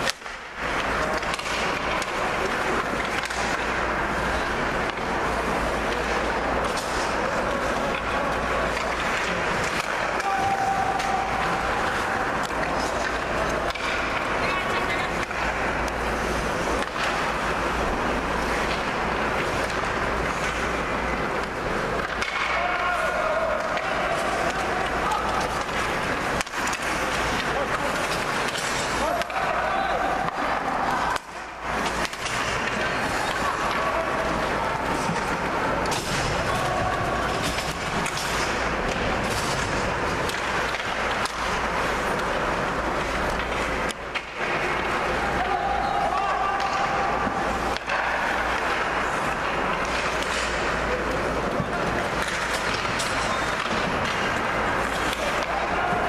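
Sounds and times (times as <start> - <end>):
skate blades scraping ice: 0.0 - 56.0
sticks and puck clacking: 0.0 - 56.0
people shouting: 8.8 - 15.1, 22.1 - 26.0, 26.7 - 39.0, 44.8 - 49.0, 54.2 - 56.0.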